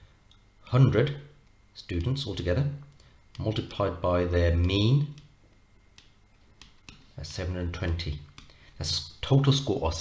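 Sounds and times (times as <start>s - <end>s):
stylus tapping tablet: 4.5s - 8.7s.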